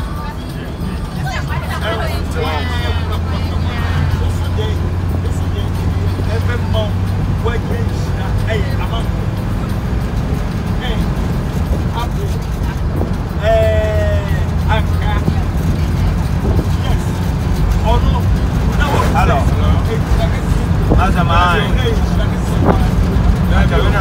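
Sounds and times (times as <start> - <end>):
people talking: 0.0 - 9.4, 10.6 - 24.0
car engine and tyres rumbling: 0.0 - 24.0.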